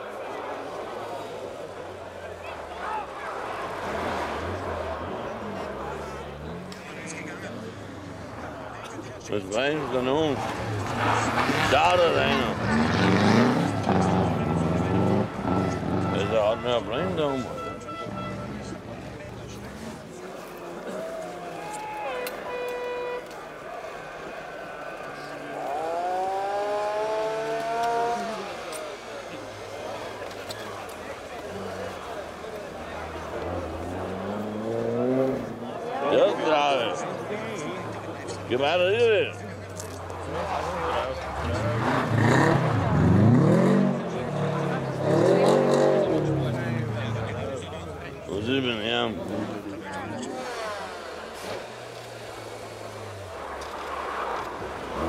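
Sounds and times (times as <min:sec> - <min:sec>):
rally car engine revving: 0:02.2 - 0:08.6, 0:09.4 - 0:20.2, 0:24.9 - 0:55.0.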